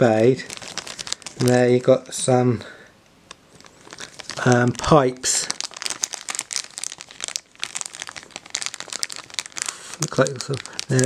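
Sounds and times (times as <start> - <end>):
plastic bag crinkling: 0.0 - 2.3, 3.3 - 11.0.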